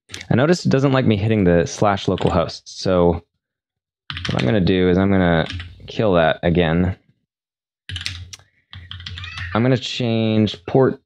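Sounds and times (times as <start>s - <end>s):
keyboard typing: 4.1s - 4.6s, 5.4s - 5.7s, 7.9s - 9.6s.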